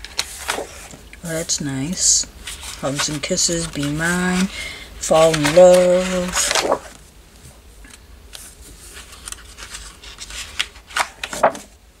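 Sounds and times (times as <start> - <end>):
paper rustling and sliding: 0.0 - 7.6, 8.3 - 11.8.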